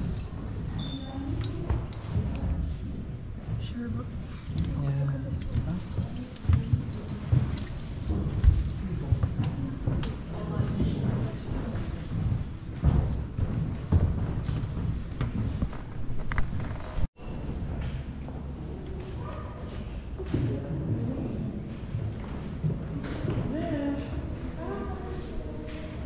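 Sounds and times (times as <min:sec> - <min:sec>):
chatter of visitors: 0:18.4 - 0:26.0.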